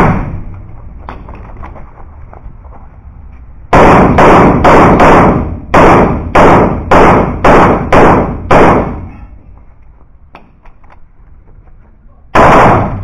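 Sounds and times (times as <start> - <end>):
pistol shots echoing indoors: 0.0 - 0.5, 3.7 - 9.2, 12.3 - 13.0.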